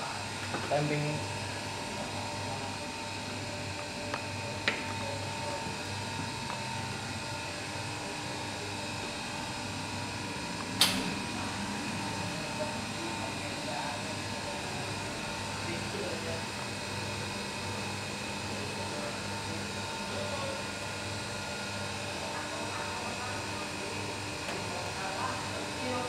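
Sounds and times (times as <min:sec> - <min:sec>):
espresso machine hum: 0:00.0 - 0:26.0.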